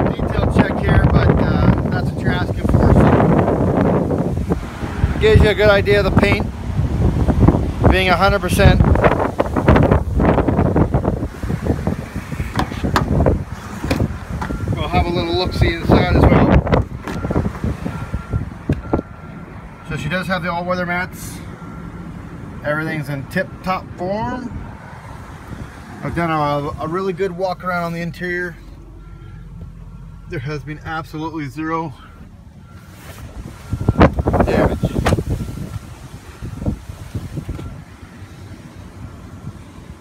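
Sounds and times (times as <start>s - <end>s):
microphone handling rumble: 0.0s - 19.0s, 32.3s - 37.8s
wind noise on microphone: 0.0s - 19.6s, 24.5s - 26.0s, 32.6s - 40.0s.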